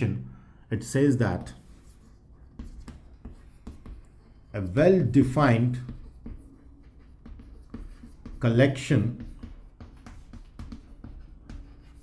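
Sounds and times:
chalk writing on chalkboard: 0:01.3 - 0:12.0.

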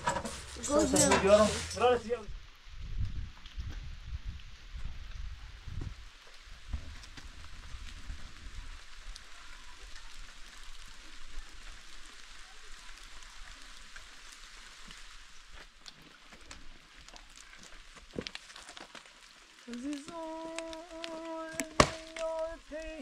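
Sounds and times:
light rain falling: 0:00.0 - 0:23.0.

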